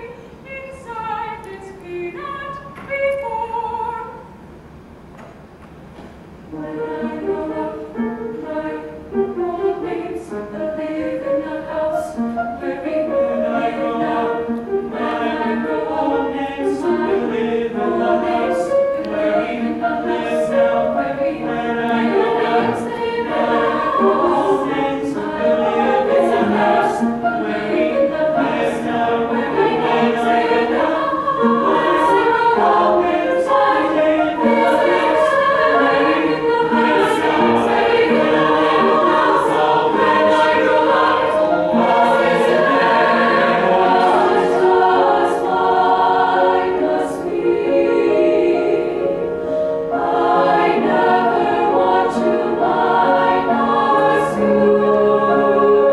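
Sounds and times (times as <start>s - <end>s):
mixed choir singing: 6.5s - 55.9s.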